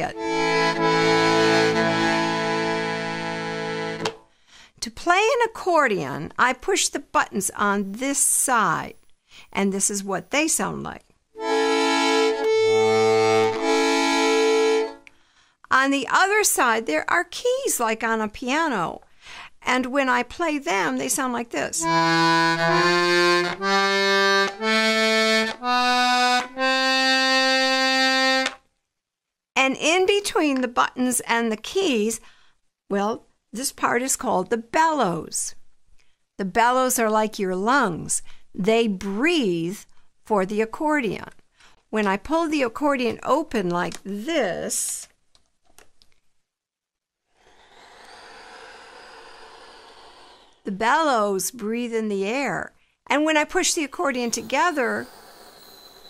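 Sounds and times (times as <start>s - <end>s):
piano accordion held notes: 0.1s - 4.1s, 11.4s - 15.0s, 21.8s - 28.5s.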